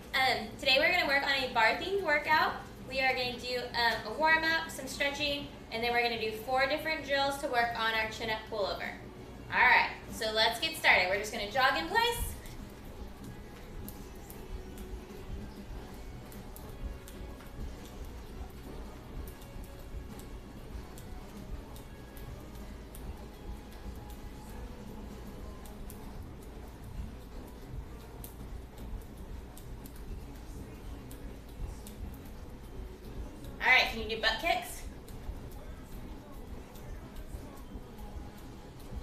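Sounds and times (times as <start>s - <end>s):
faint background music: 0.0s - 39.0s.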